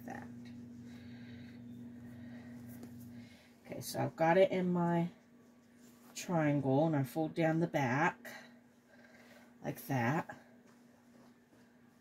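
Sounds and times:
low steady hum: 0:00.0 - 0:12.0
fabric rustling: 0:00.2 - 0:06.7, 0:10.3 - 0:12.0.

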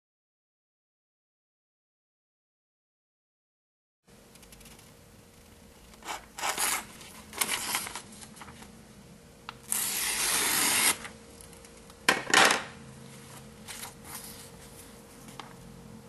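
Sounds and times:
paper rustling: 0:06.1 - 0:08.7
blade slicing paper: 0:09.7 - 0:11.1.

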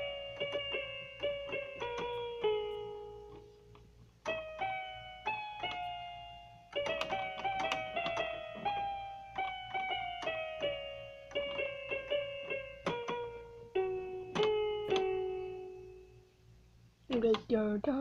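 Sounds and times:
electronic keyboard melody: 0:00.0 - 0:16.3.

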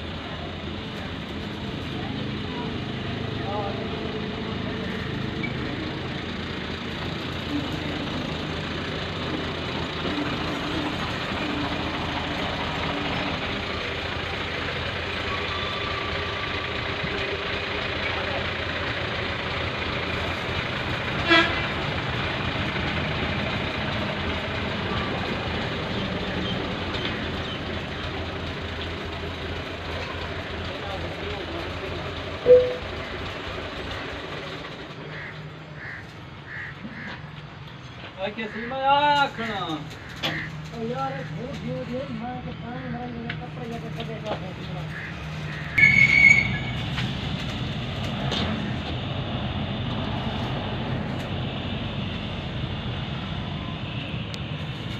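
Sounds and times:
tractor diesel engine running: 0:00.0 - 0:54.9
brief pitched chirps: 0:32.4 - 0:32.8.

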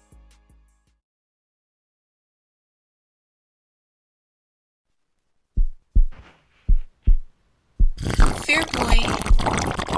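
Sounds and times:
heartbeat thumps: 0:05.6 - 0:08.2.

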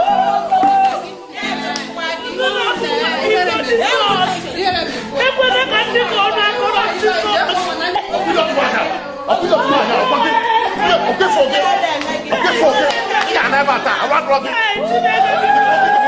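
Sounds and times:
many overlapping voices: 0:00.0 - 0:16.0.

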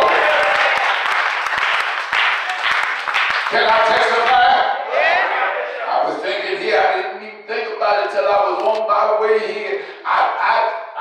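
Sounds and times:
crowd clapping: 0:00.0 - 0:04.5.

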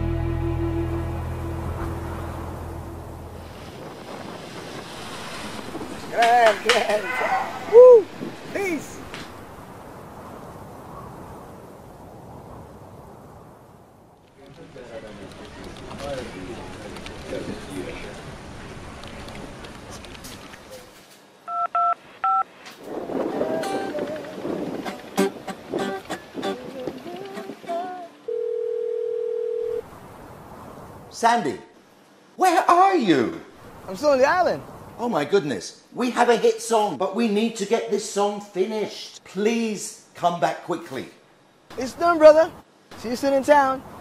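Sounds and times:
music: 0:00.0 - 0:03.4, 0:23.6 - 0:28.2
sustained song chord: 0:00.0 - 0:03.6
ocean surf: 0:00.0 - 0:28.5, 0:29.8 - 0:32.8, 0:33.5 - 0:35.0, 0:41.7 - 0:44.0
wind: 0:00.0 - 0:44.0
telephone keypad beeps: 0:21.5 - 0:22.4.

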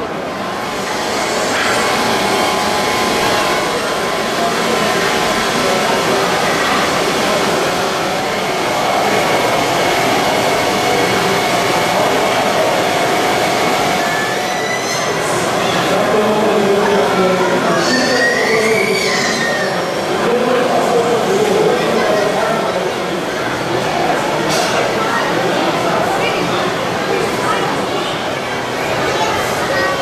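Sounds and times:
large fan running: 0:00.0 - 0:30.0.

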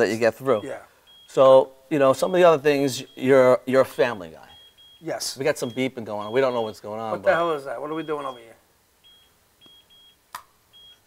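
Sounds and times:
faint high-pitched electronic beeps: 0:00.0 - 0:11.0.

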